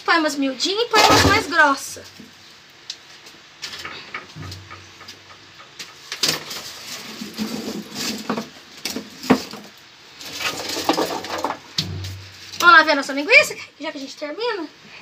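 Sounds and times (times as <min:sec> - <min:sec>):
wood scraping rustles: 0:03.0 - 0:12.9
firewood sticks knocking: 0:03.6 - 0:06.7, 0:08.1 - 0:12.9.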